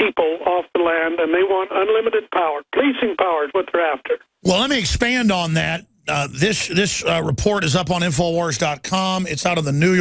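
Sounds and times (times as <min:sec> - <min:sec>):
man speaking over telephone: 0:00.0 - 0:10.0.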